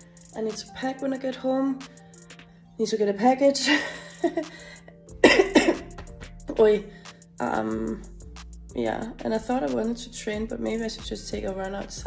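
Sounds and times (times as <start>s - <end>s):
woman laughing: 3.6s - 5.9s.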